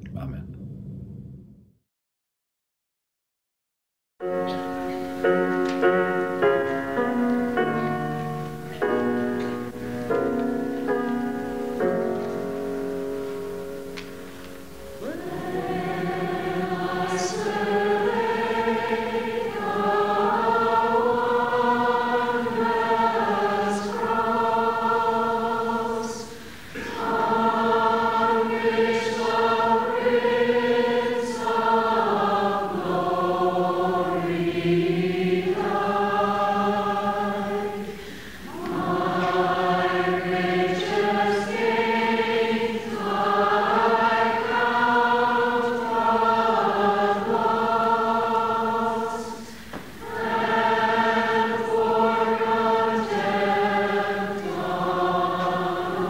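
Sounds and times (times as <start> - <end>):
choir singing a hymn: 5.0 - 56.0.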